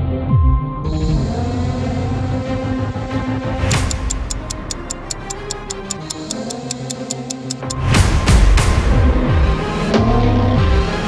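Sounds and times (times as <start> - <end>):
clock ticking fast: 3.7 - 7.9.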